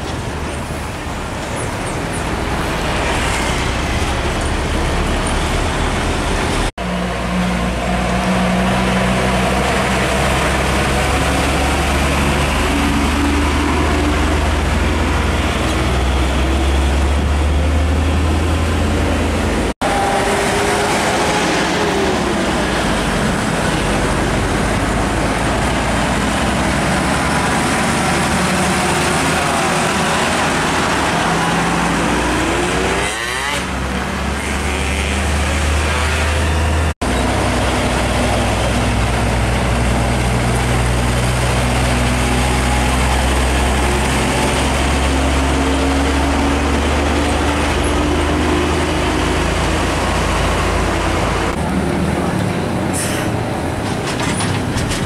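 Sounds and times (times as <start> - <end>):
trucks driving past: 0.0 - 55.0
tyre and traffic noise: 0.0 - 55.0.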